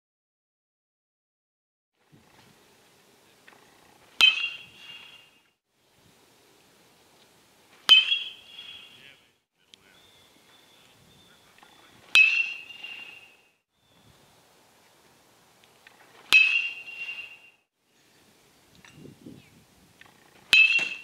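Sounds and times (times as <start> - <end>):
metal bat hitting ball: 4.2 - 5.4, 7.8 - 9.0, 12.0 - 13.4, 16.2 - 17.6, 20.4 - 21.0.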